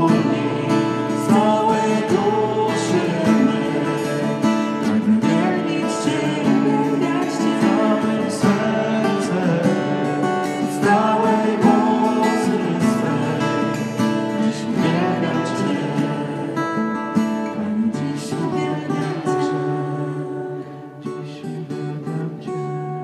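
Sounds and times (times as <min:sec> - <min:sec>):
people singing: 0:00.0 - 0:22.6
strummed acoustic guitar: 0:00.0 - 0:23.0.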